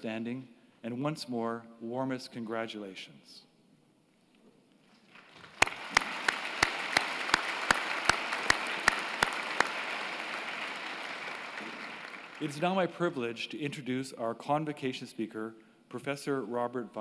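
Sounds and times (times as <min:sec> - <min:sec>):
audience applause: 0:05.2 - 0:12.6
close single person clapping: 0:05.4 - 0:12.5.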